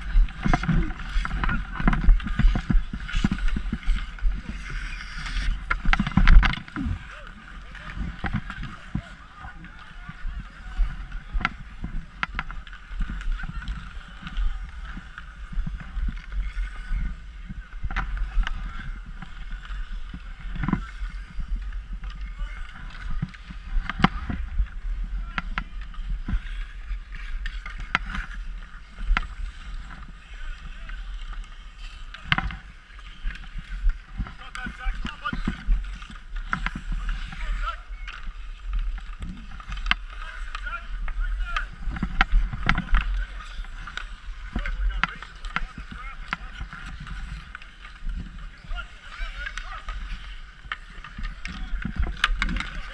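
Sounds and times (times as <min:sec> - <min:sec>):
hockey sticks clacking on ice: 0:00.0 - 0:52.9
skates scraping on ice: 0:00.0 - 0:52.9.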